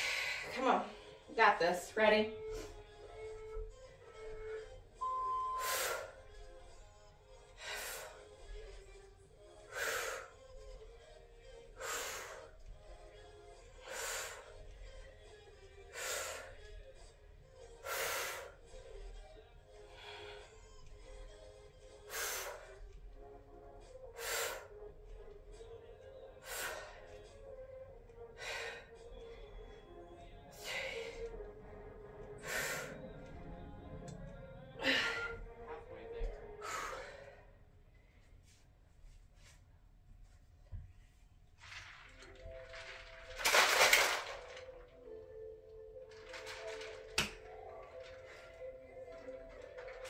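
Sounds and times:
faint background music: 0.0 - 50.0.

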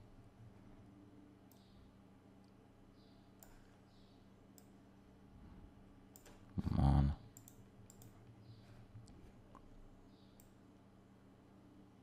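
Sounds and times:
faint steady hum: 0.0 - 12.0
computer mouse clicks: 1.5 - 1.7, 3.4 - 3.7, 4.5 - 4.8, 6.1 - 6.4, 7.3 - 10.6.

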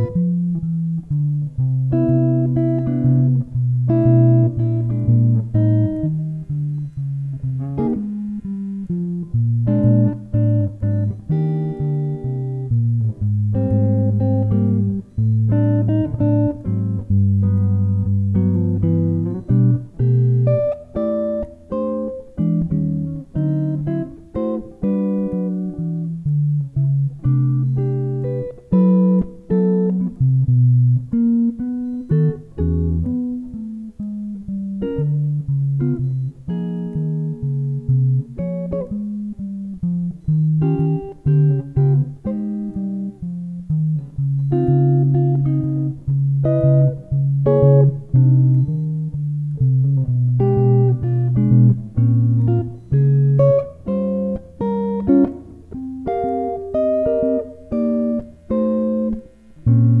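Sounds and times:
solo jazz electric guitar: 0.0 - 60.0.

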